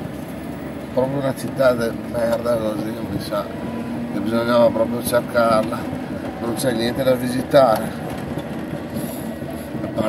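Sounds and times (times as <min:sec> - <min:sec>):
scooter road and wind rumble: 0:00.0 - 0:10.0.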